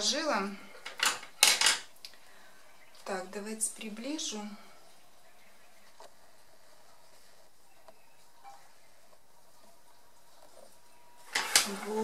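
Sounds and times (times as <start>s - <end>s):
pens and pencils clattering on table: 0.7s - 1.9s, 11.2s - 12.0s.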